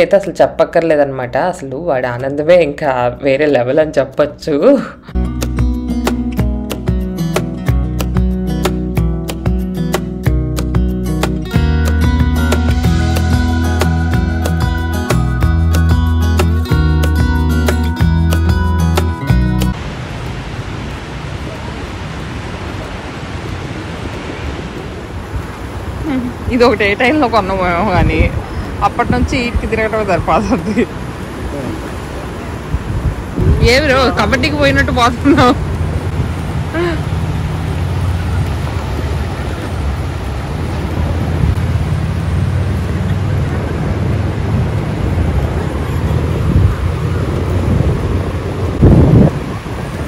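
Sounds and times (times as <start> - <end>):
acoustic guitar music: 5.1 - 19.8
wind and surf on a beach: 19.7 - 50.0.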